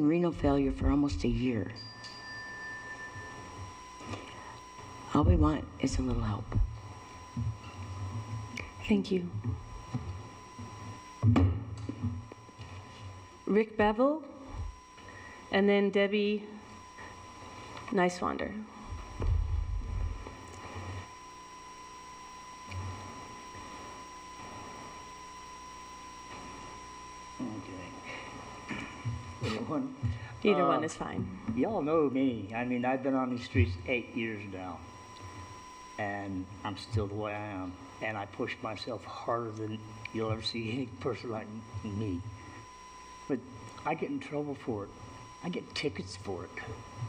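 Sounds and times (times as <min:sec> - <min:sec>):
low hum: 0:00.0 - 0:47.0
faint high-pitched tones: 0:00.7 - 0:47.0
thin high tone: 0:01.6 - 0:04.4.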